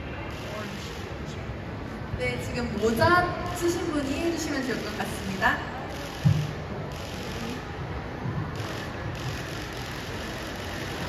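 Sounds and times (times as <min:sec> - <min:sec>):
convention hall din: 0:00.0 - 0:11.0.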